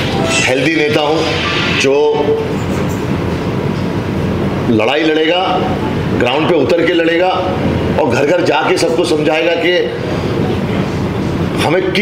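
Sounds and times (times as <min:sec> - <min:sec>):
steady background noise: 0:00.0 - 0:12.0
man's voice: 0:00.2 - 0:02.4.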